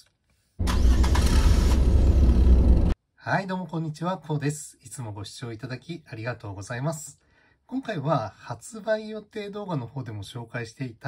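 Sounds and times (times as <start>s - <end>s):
car engine and road rumble: 0.6s - 3.0s.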